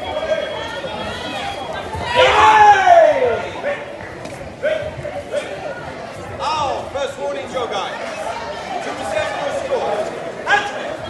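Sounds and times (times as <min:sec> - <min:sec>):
crowd chatter and calls: 0:00.0 - 0:11.0.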